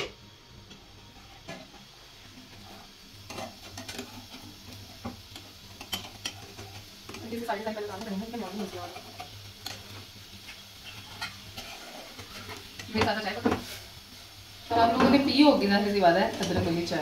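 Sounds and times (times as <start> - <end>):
egg sizzling: 0.0 - 17.0
spatula scraping frying pan: 2.5 - 15.4.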